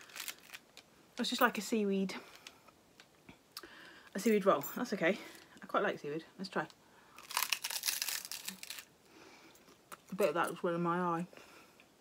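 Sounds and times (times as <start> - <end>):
crispy snack crunching: 0.0 - 0.9, 7.2 - 8.9.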